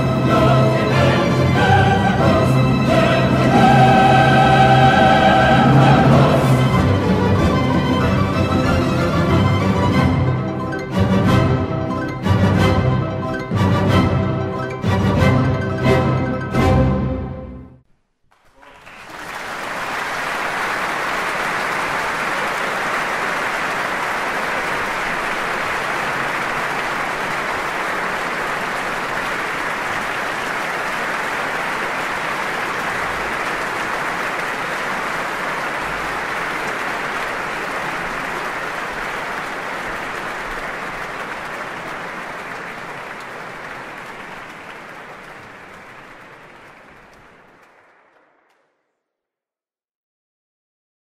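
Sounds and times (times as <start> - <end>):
audience applauding: 18.3 - 48.9.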